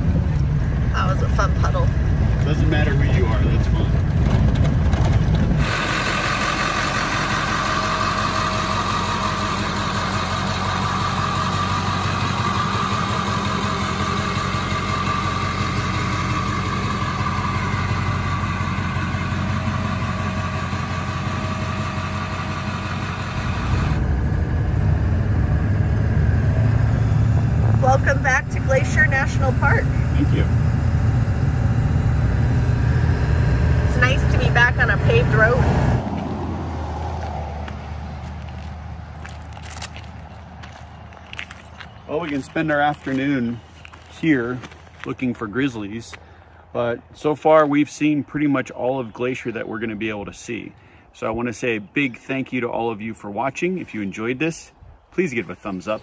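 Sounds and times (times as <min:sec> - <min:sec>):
deep road rumble: 0:00.0 - 0:56.0
engine and tyre noise: 0:00.0 - 0:56.0.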